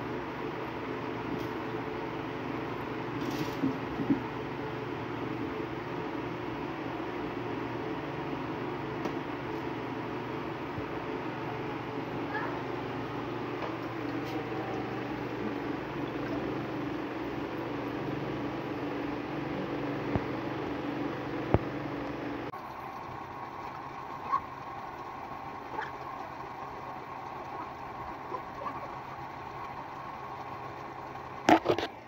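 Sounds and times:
machine hum: 0:00.0 - 0:32.0.

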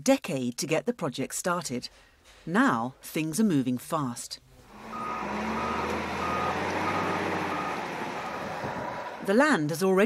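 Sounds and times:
diesel engine running: 0:04.6 - 0:09.4
reversing alarm beeping: 0:04.9 - 0:08.7.

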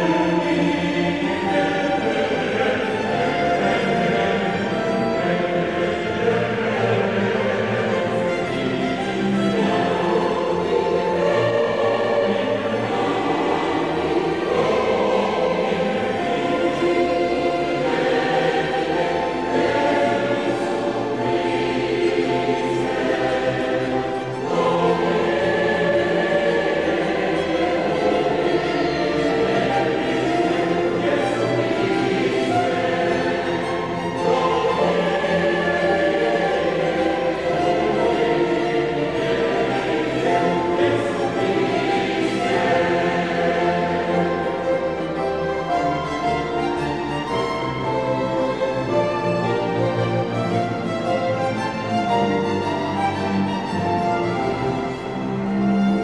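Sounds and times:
choir singing sacred piece: 0:00.0 - 0:56.0
orchestral accompaniment: 0:00.0 - 0:56.0.

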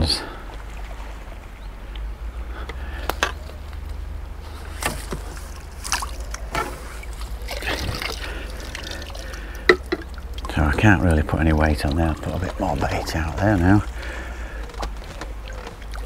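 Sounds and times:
fishing tackle clicks and knocks: 0:04.8 - 0:11.2
water trickling and dripping: 0:05.0 - 0:16.0.

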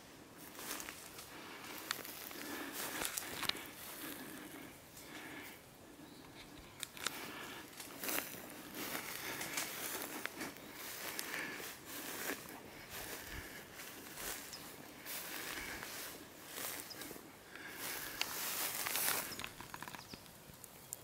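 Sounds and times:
footsteps crunching through dry grass: 0:00.0 - 0:20.3.

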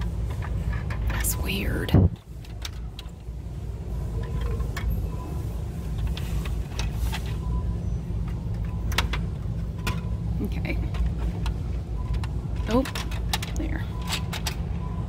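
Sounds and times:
steady low hum: 0:00.0 - 0:15.0.

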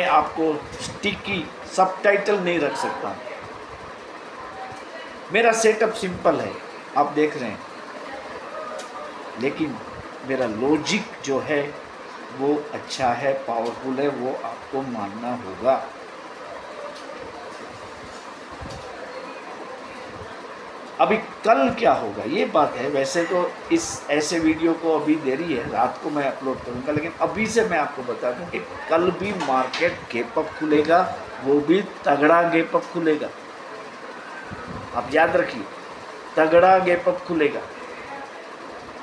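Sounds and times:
steady background noise: 0:00.0 - 0:39.0.

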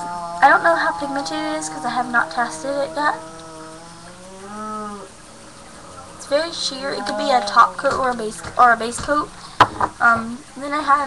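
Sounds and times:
person humming: 0:00.0 - 0:03.8, 0:05.9 - 0:09.4.

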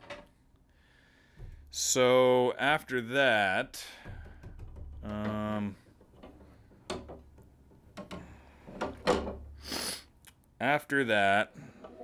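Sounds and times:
antlers knocking on wooden table: 0:01.4 - 0:01.8, 0:04.0 - 0:09.5.

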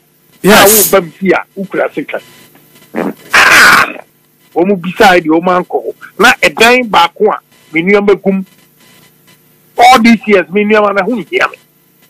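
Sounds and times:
person making short vocal sound: 0:03.0 - 0:04.0.

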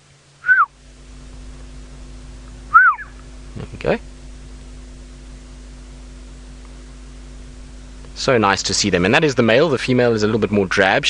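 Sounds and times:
steady low hum: 0:00.0 - 0:11.0
bird whistle call: 0:00.4 - 0:00.7, 0:02.7 - 0:03.2.

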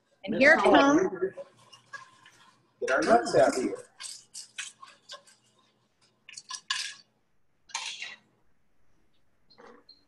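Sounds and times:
wooden spoon scraping a pan: 0:00.0 - 0:07.0
pecans rattling in a pan: 0:00.7 - 0:07.1.

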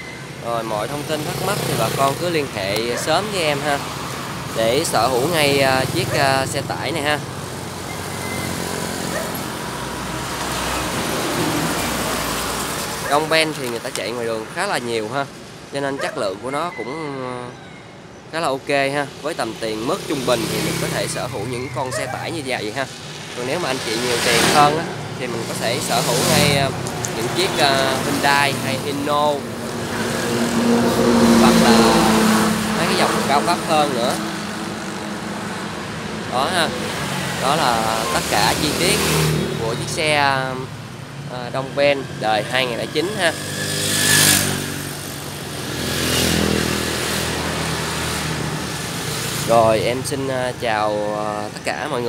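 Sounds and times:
vehicle approaching on road: 0:00.0 - 0:16.6, 0:18.4 - 0:52.0
outdoor noise: 0:00.0 - 0:52.0.

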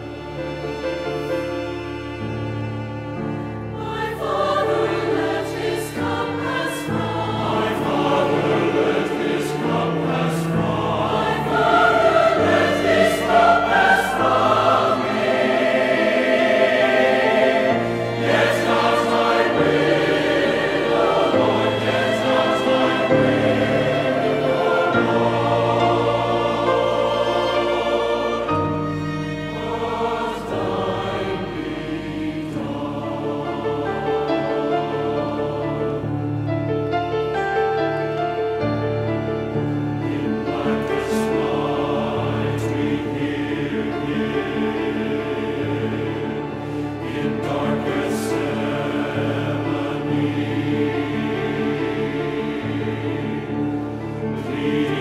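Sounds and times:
church choir singing: 0:00.0 - 0:55.0
piano and strings: 0:00.0 - 0:55.0.

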